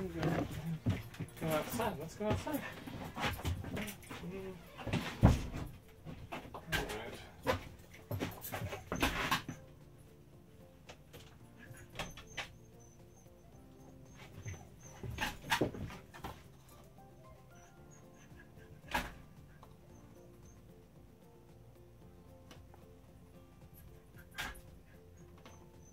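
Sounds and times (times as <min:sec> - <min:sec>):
faint background music: 0:00.0 - 0:25.9
dog whimpering: 0:11.5 - 0:16.0, 0:16.7 - 0:18.8.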